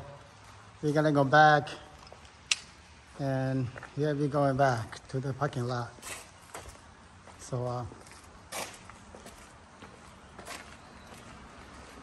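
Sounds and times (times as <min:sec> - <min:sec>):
faint outdoor background noise: 0:00.0 - 0:12.0
footsteps on paved path: 0:01.7 - 0:12.0.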